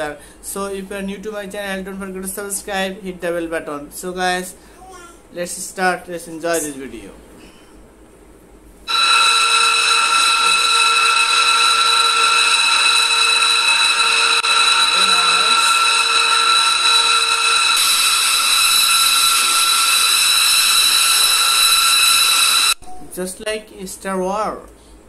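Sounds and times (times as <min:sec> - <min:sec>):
jet turbine whine: 0:08.9 - 0:22.8.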